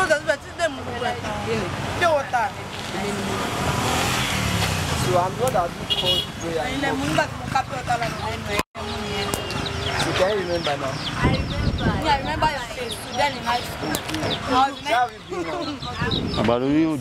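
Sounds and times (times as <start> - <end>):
motor vehicle passing by: 0.6 - 16.9
people talking: 5.1 - 17.0.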